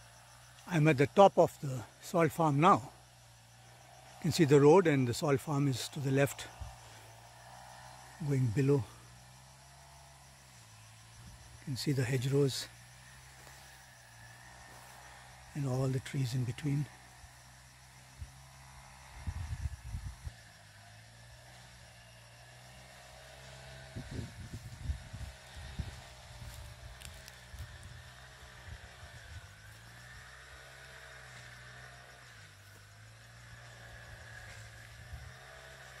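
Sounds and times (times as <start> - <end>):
steady low hum: 5.9 - 36.0.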